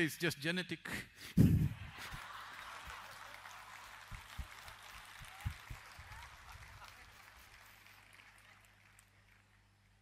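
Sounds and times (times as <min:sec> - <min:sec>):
audience laughter: 0:01.6 - 0:03.1.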